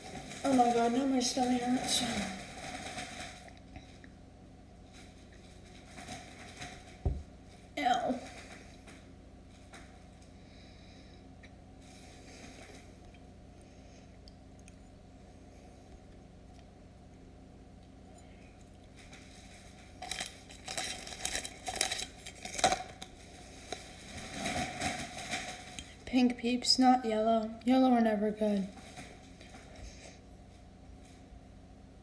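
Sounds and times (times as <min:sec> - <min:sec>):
packaging crinkling and rustling: 0:00.0 - 0:03.9, 0:19.0 - 0:26.0.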